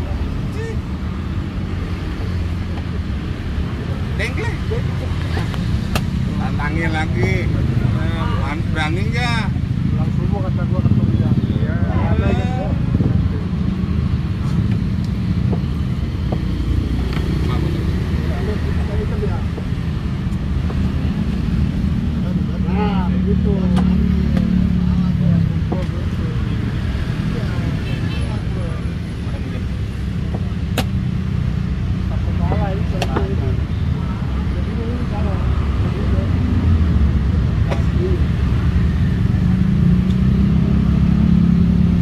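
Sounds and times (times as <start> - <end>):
voices talking: 0.0 - 41.0.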